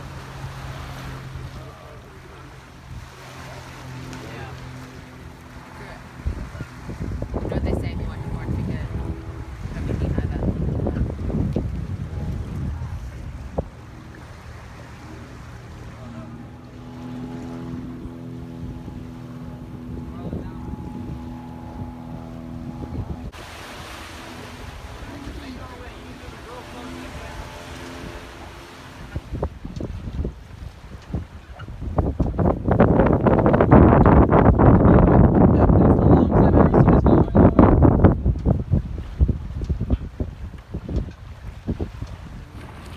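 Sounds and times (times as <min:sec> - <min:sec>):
low hum with even tones: 0:00.0 - 0:42.9
water rushing past hull: 0:00.0 - 0:42.9
wind buffeting microphone: 0:00.0 - 0:42.9.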